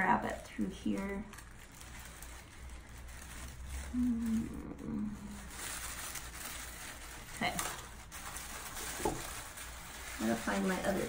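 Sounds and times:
dry twigs crackling: 0.0s - 11.0s
tissue paper rustling: 0.0s - 11.0s.

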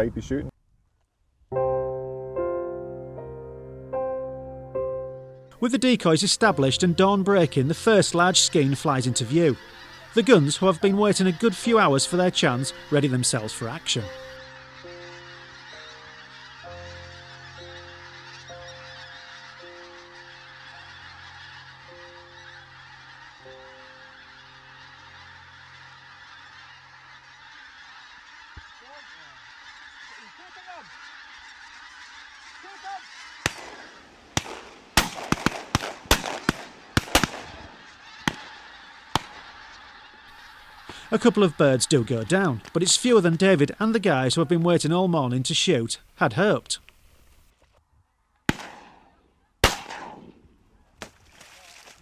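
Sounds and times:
soft background music: 1.5s - 25.1s
geese calling: 4.0s - 52.0s
shotgun shots: 34.4s - 37.7s, 48.5s - 51.1s.

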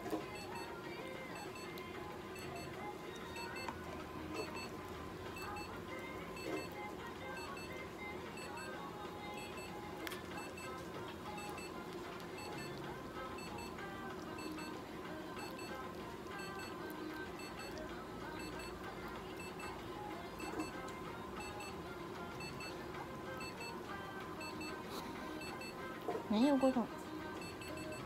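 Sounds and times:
short electronic tones in pairs: 2.4s - 2.8s.

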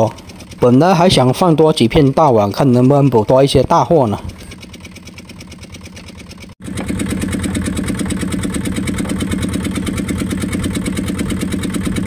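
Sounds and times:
boat engine running: 0.0s - 12.0s.

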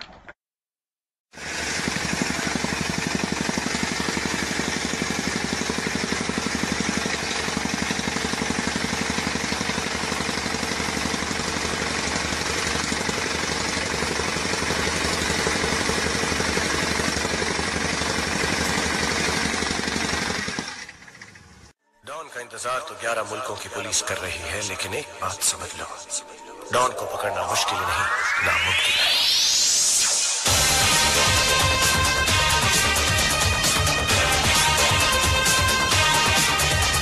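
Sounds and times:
rammer compactor hammering: 1.4s - 21.7s.

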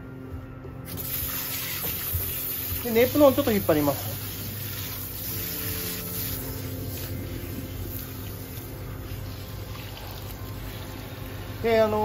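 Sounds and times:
shower head spraying water: 0.9s - 12.0s.

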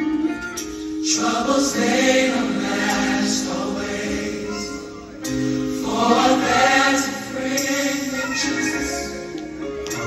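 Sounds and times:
gospel choir song over loudspeakers: 0.7s - 10.0s.

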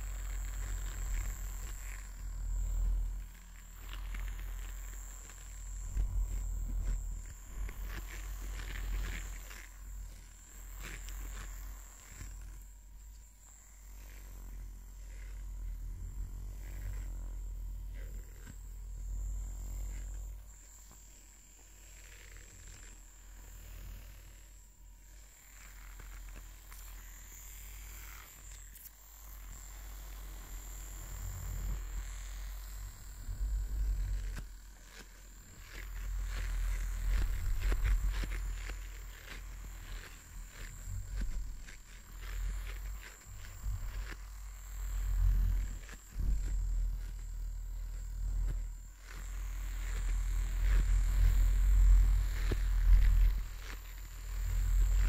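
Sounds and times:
brush rubbing microphone cover: 0.0s - 55.0s.

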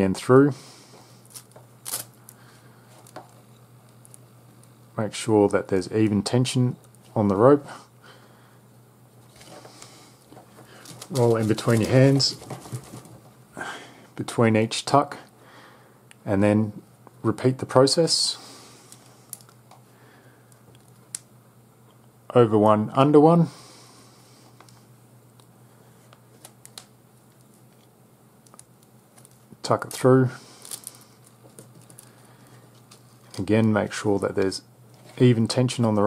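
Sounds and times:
rope rustling in hands: 1.2s - 3.4s, 10.2s - 13.2s, 28.4s - 33.7s.

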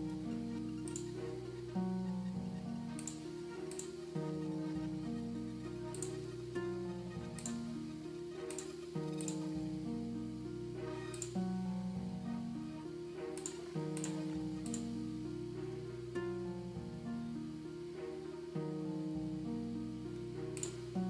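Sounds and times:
orchestral string loop with echo: 0.0s - 21.0s.

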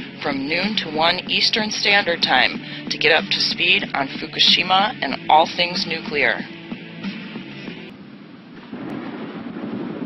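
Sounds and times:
thunder rumbling: 7.8s - 10.0s
rain: 7.9s - 10.0s.

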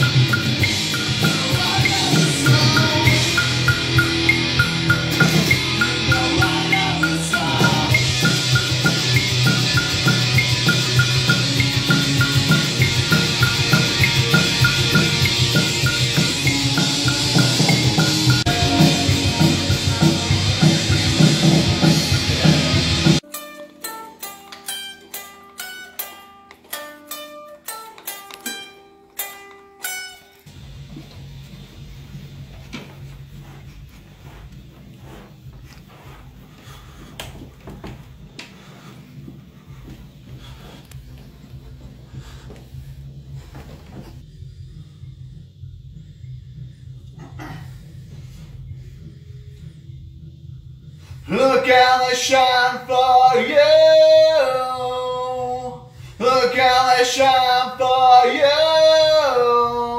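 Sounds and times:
loud rock music: 0.0s - 23.4s, 51.2s - 59.9s
electric guitar single notes: 0.0s - 33.0s
low hum: 30.5s - 51.4s.

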